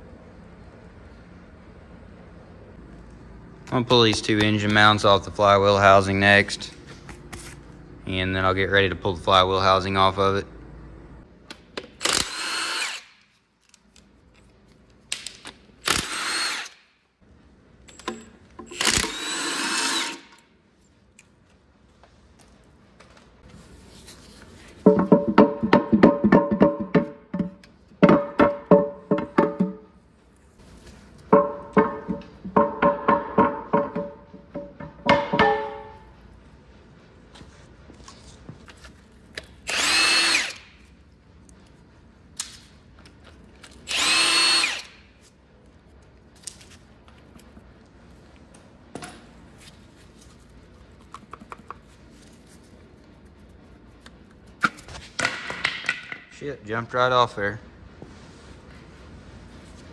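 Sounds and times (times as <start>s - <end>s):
impact wrench motor whirring: 12.0s - 13.2s, 15.8s - 16.8s, 18.6s - 20.4s, 39.6s - 40.8s, 43.8s - 45.0s.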